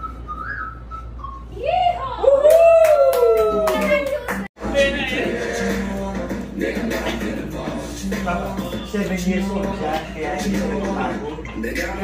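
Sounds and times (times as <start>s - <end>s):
sliding whistled note: 0.0s - 1.7s.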